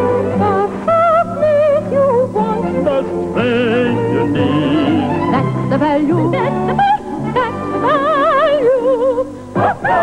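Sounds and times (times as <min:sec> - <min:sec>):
instrumental accompaniment: 0:00.0 - 0:10.0
operatic singing with vibrato: 0:00.0 - 0:10.0.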